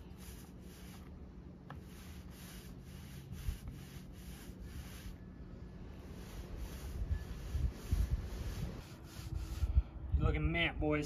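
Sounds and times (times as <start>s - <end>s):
paint roller rubbing on plywood: 0.0s - 5.2s, 5.9s - 9.7s.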